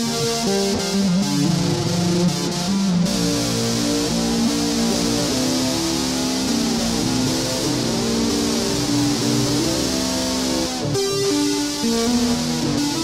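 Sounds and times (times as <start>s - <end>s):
distorted electric guitar melody: 0.0s - 13.0s.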